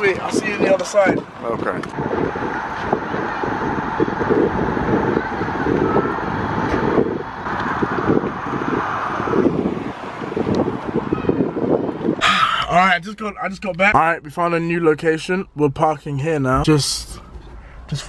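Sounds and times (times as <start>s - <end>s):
wind buffeting microphone: 0.0s - 12.3s.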